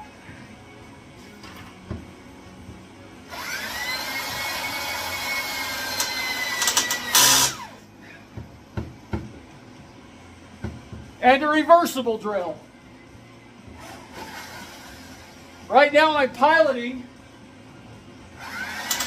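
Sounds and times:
electric drill whine: 3.3s - 7.8s, 18.4s - 19.0s.

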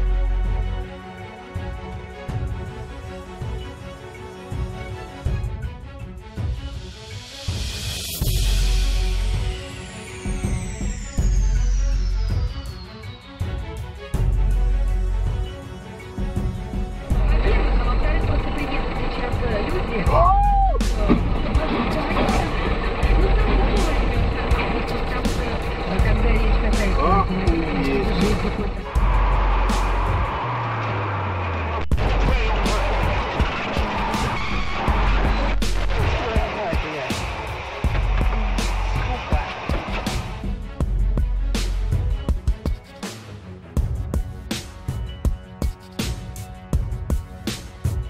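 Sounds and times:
background music: 0.0s - 48.0s
car engine and road rumble: 16.6s - 42.6s
voices: 17.1s - 30.2s, 32.1s - 40.5s.

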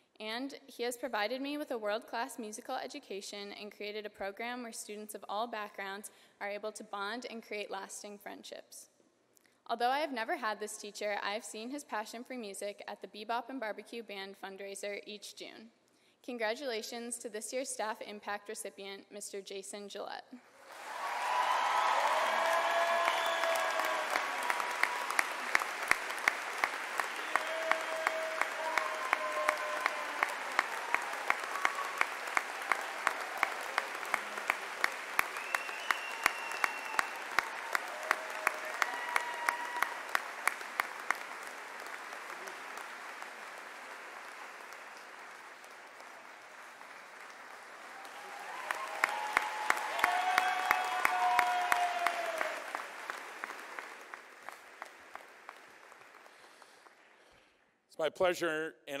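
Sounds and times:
audience applauding: 20.6s - 57.3s
person clapping loudly: 20.9s - 57.0s.

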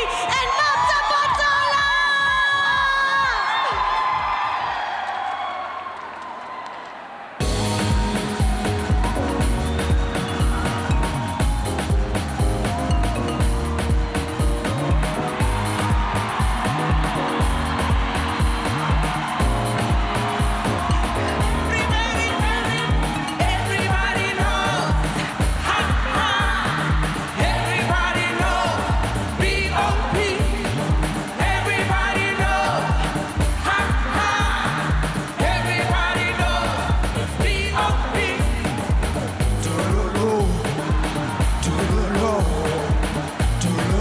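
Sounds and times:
live band dance beat: 0.0s - 4.7s, 7.4s - 44.0s
backing music: 7.4s - 44.0s.

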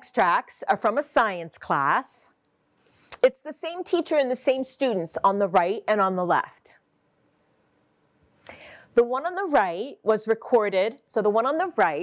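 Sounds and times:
woman speaking: 0.0s - 2.4s, 3.2s - 6.8s, 9.0s - 12.0s
person drawing breath: 2.8s - 3.2s, 8.4s - 9.0s.

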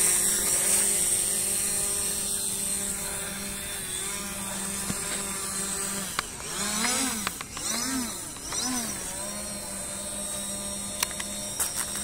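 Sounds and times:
drone propeller hum: 0.0s - 12.0s.

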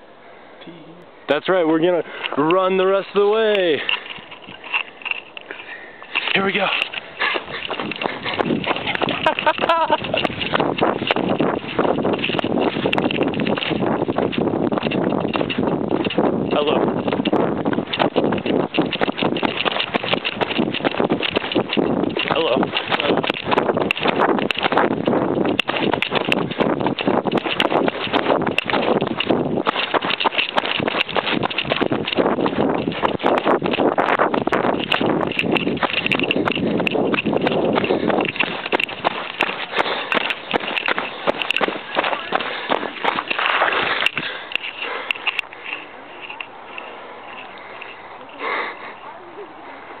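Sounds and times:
footsteps running on dirt: 2.1s - 48.7s
microphone handling noise: 3.5s - 47.5s
sharp breath or sniff: 47.5s - 49.1s.

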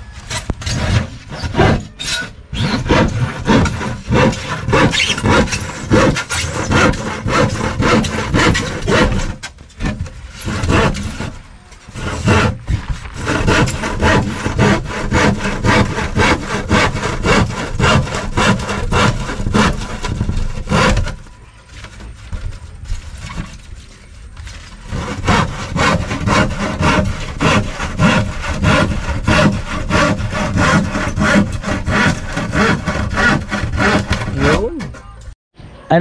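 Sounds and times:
handsaw cutting plywood: 0.2s - 21.2s, 24.7s - 35.0s.

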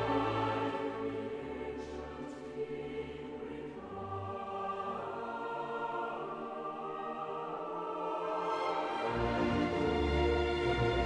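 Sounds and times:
choir singing with orchestra: 0.0s - 11.0s.

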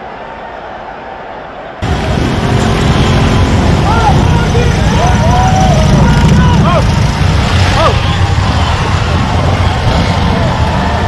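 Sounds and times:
onlookers shouting: 0.0s - 11.0s
motorcycle engines rumbling: 1.8s - 11.0s.

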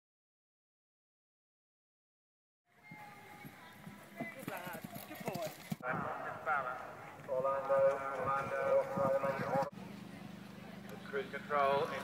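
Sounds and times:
horse hoofbeats: 2.8s - 5.8s
commentator speaking: 5.8s - 9.7s.

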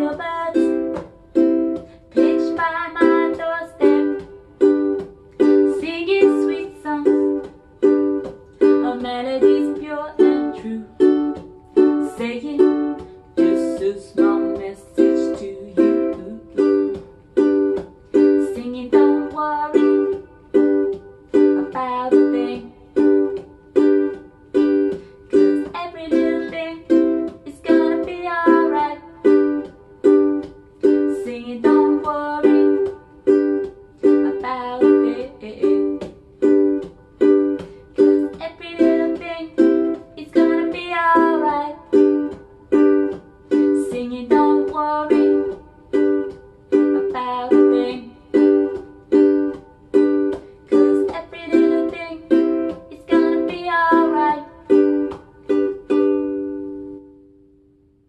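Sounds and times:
woman singing: 0.0s - 36.9s, 37.5s - 49.6s, 50.3s - 55.3s
ukulele strummed reggae rhythm: 0.0s - 58.0s.

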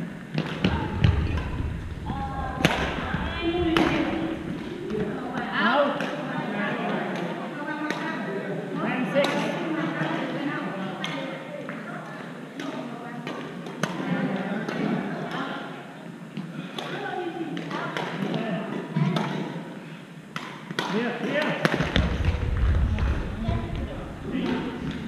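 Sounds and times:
hubbub of echoing voices: 0.0s - 25.0s.

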